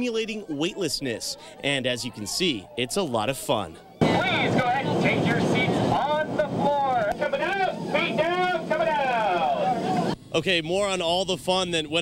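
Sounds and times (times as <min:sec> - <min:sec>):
man speaking over public address: 0:00.0 - 0:12.0
aircraft cabin noise: 0:04.0 - 0:10.2.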